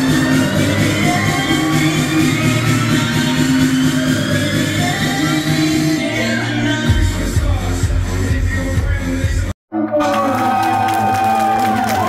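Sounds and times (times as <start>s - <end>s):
electronic music with steady beat: 0.0s - 9.6s.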